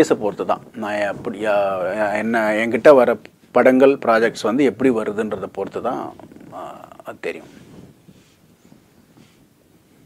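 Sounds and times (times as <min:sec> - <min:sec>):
man speaking: 0:00.0 - 0:07.5.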